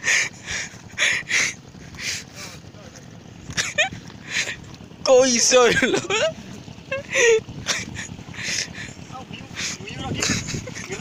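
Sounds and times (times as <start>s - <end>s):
loud human laughter: 3.5s - 4.6s, 5.6s - 11.0s.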